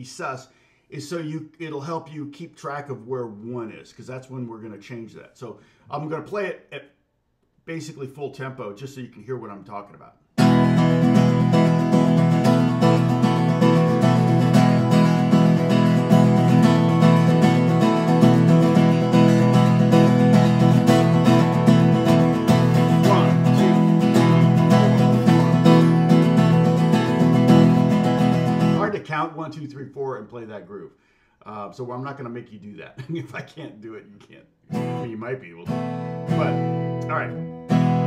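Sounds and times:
acoustic guitar strumming: 10.4 - 29.2, 34.7 - 38.0.

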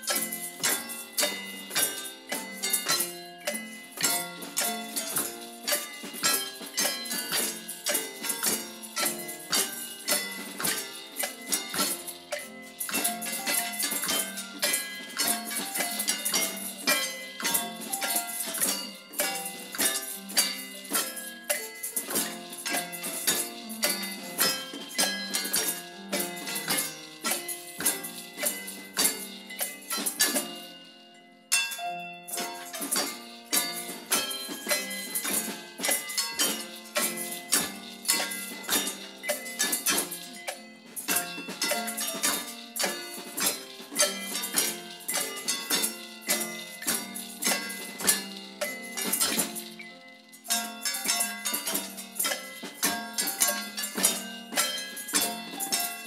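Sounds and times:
tambourine jingles: 0.0 - 56.0
trowels struck with mallet chiming: 0.0 - 56.0.

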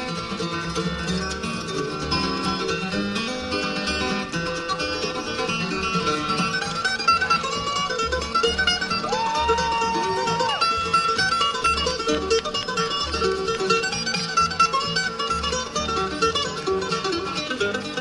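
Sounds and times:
flatpicked acoustic guitars: 0.0 - 18.0
mandolin playing quick runs: 0.0 - 18.0
upright bass: 0.0 - 18.0.

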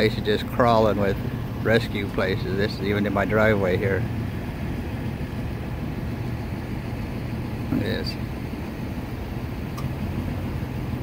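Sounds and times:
engines idling: 0.0 - 11.0.

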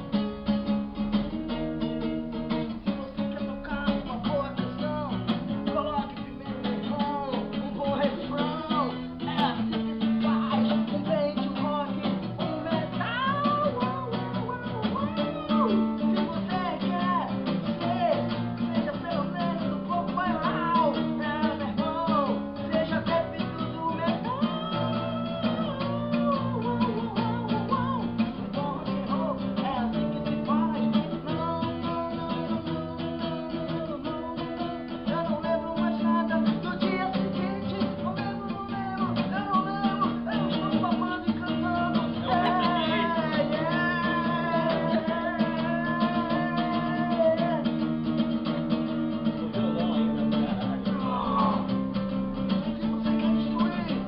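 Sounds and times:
acoustic guitar strummed: 0.0 - 54.0
people singing along: 39.9 - 47.4.

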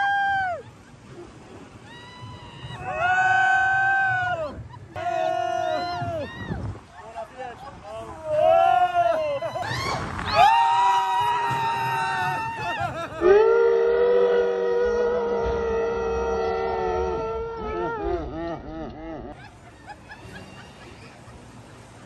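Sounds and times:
roller coaster riders crying out: 0.0 - 18.4, 19.3 - 21.9.

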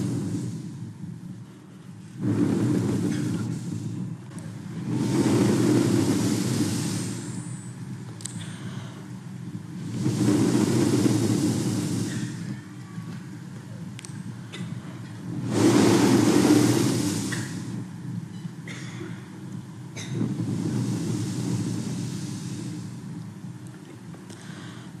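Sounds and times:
breaths blown into microphone: 0.0 - 12.7, 14.1 - 18.0, 18.7 - 23.2.

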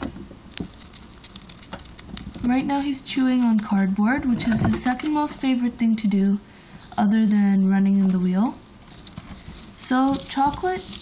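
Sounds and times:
gerbil chewing cardboard: 0.5 - 3.7.

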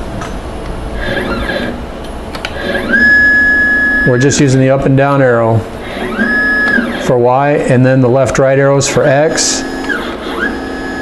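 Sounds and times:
stepper motor whine: 0.9 - 11.0.

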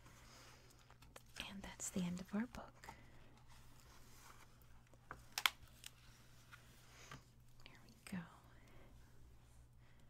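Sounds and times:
book handling noises on table: 2.2 - 7.3.

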